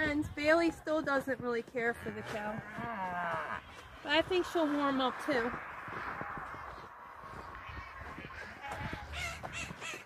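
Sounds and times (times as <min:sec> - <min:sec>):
harsh bird calls: 0:03.0 - 0:10.0.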